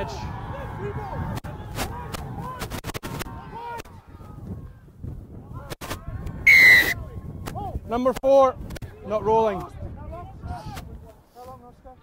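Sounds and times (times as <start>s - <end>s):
referee whistle blast: 6.5s - 7.0s.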